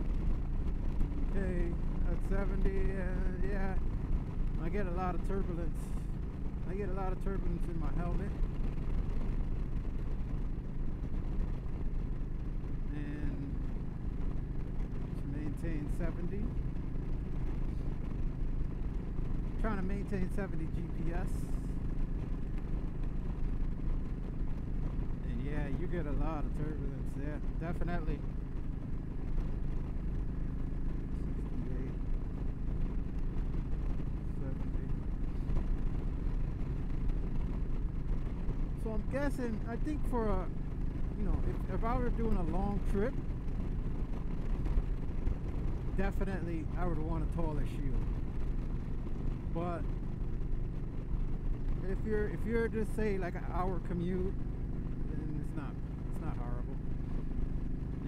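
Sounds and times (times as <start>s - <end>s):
motorcycle engine droning: 0.0s - 58.0s
wind buffeting a helmet: 5.9s - 19.6s, 20.8s - 26.5s, 27.4s - 46.0s, 47.9s - 51.9s.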